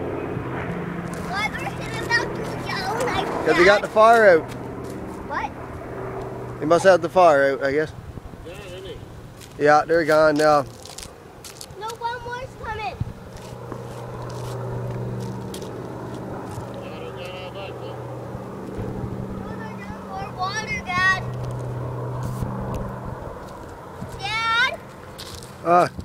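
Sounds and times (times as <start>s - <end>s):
propeller aircraft droning: 0.0s - 26.0s.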